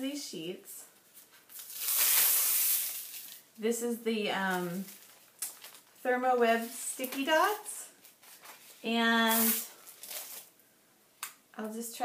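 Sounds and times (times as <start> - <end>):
adhesive sheet being pulled up: 9.2 - 10.4.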